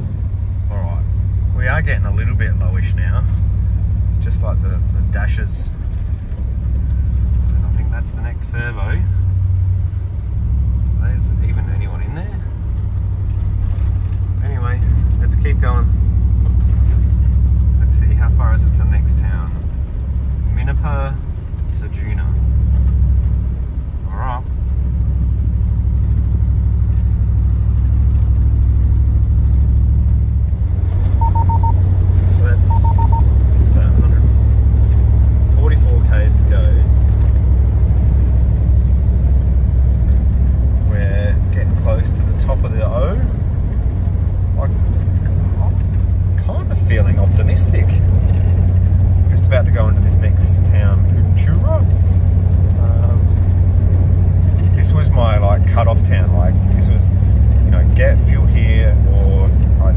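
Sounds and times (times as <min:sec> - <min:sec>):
car engine and road drone: 0:00.0 - 0:59.9
short electronic beeps: 0:31.2 - 0:31.8, 0:32.6 - 0:33.3.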